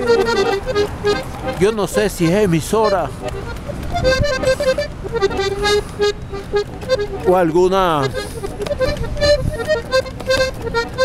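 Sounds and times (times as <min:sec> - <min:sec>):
accordion melody: 0:00.0 - 0:11.0
street traffic: 0:00.0 - 0:11.0.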